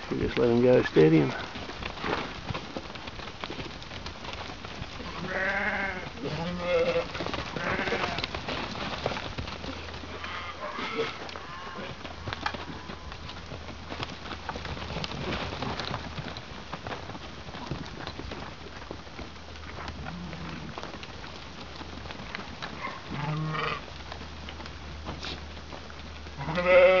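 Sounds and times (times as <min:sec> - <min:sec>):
hooves shuffling on dirt: 0:00.0 - 0:27.0
sheep bleating: 0:05.1 - 0:08.2, 0:23.1 - 0:23.8, 0:26.4 - 0:27.0.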